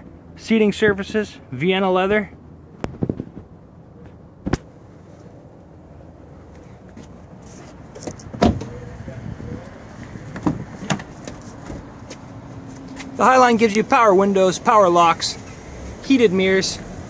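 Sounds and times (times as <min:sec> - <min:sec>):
car door clicks and knocks: 0:08.0 - 0:08.7, 0:10.3 - 0:11.8
car door shutting thump: 0:08.0 - 0:08.7.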